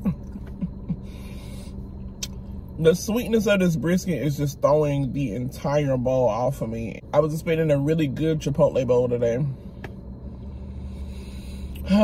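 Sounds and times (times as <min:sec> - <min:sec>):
low hum inside car: 0:00.0 - 0:12.0.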